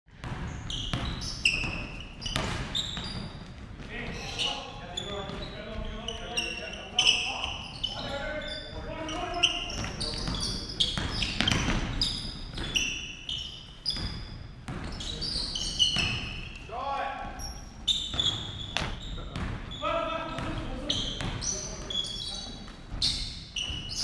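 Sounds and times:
sneaker squeaks: 0.1s - 24.0s
basketball bouncing on hardwood: 18.1s - 19.7s.

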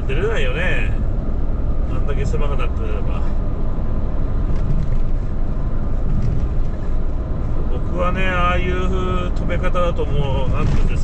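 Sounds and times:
truck engine and road noise drone: 0.0s - 11.0s.

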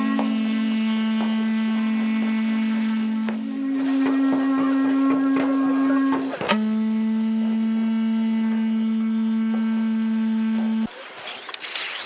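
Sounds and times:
horn blown in droning notes: 0.0s - 10.9s.

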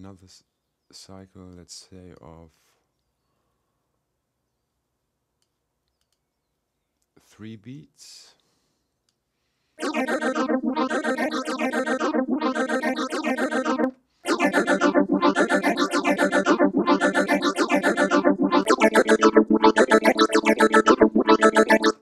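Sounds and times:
synthesizer sung syllables: 9.8s - 22.0s.

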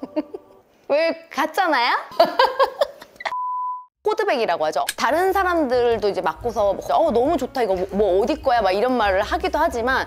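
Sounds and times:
woman laughing: 0.0s - 0.6s, 2.1s - 3.3s
electronic beep tone: 3.3s - 3.9s.

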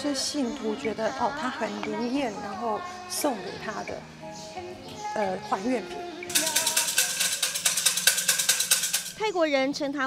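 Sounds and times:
sticks rattling in wooden cylinder: 6.3s - 9.2s.

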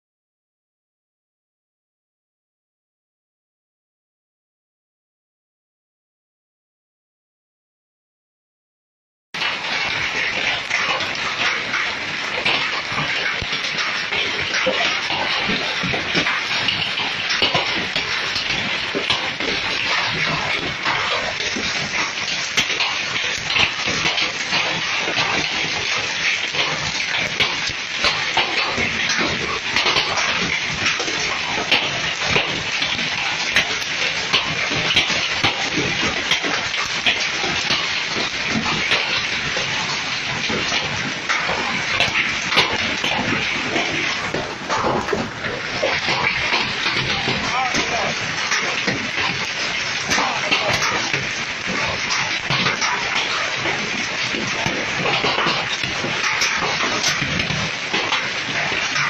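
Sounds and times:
hailstones ticking: 9.4s - 59.0s
heavy rain: 9.4s - 59.0s.

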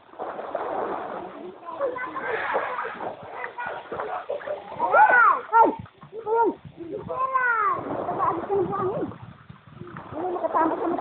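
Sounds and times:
voices: 1.2s - 9.2s, 9.8s - 11.0s.

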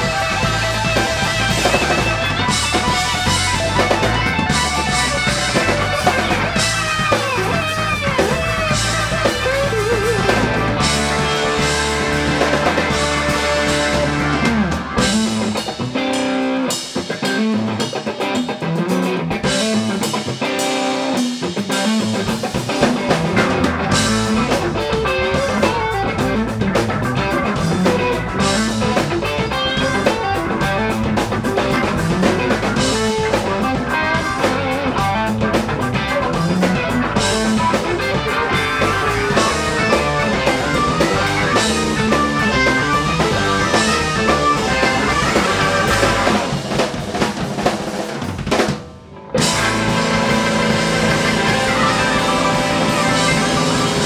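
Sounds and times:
organ: 0.0s - 47.8s, 48.4s - 54.0s
drum kit: 0.0s - 54.0s
electric bass: 0.0s - 54.0s
electric guitar: 0.0s - 54.0s.

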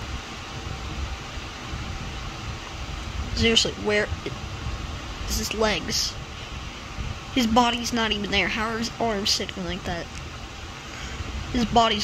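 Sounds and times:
even hiss: 0.0s - 12.0s.

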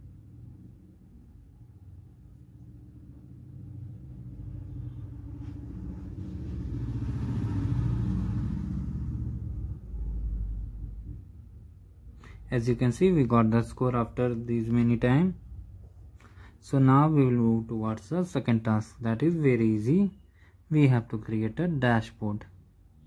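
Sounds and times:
low background rumble: 0.0s - 16.5s.

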